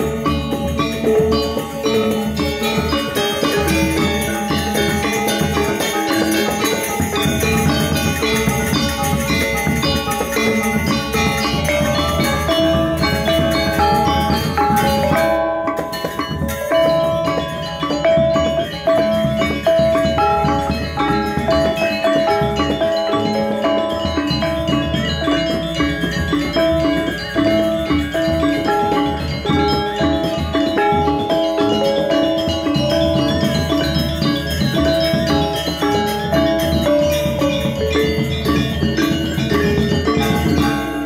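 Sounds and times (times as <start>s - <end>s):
bamboo flute melody: 0.0s - 41.0s
gamelan gong ensemble playing: 0.0s - 41.0s.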